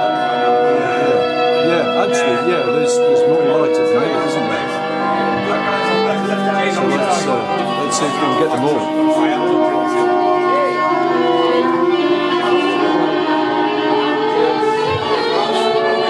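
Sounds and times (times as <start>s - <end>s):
sustained band drone: 0.0s - 16.0s
violin gliding: 0.0s - 16.0s.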